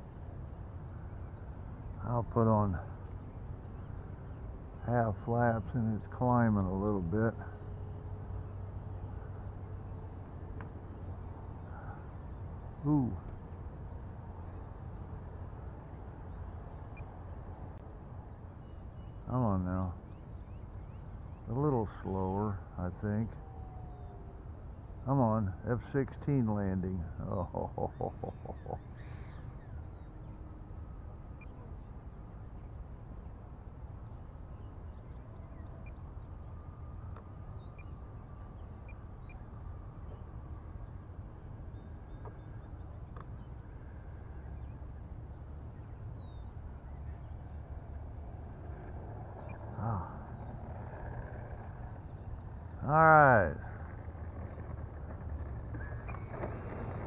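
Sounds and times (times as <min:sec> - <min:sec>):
model jet taxiing rumble: 0:46.6 - 0:57.0
man calling out: 0:52.8 - 0:53.7.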